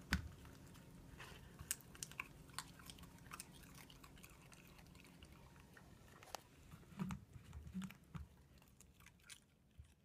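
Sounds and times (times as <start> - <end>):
dog chewing crunchy greens: 0.2 - 10.0.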